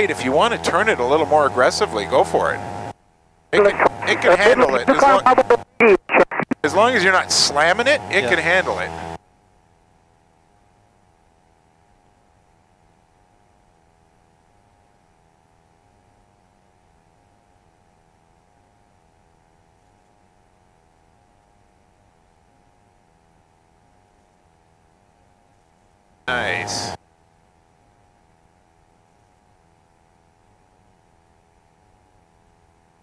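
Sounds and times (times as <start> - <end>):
faint steady hum: 0.0 - 33.0.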